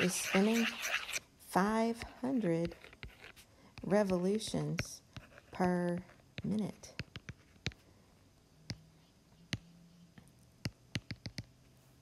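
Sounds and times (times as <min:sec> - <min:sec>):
stylus tapping tablet screen: 0:00.0 - 0:01.2, 0:03.8 - 0:07.8, 0:08.6 - 0:11.5.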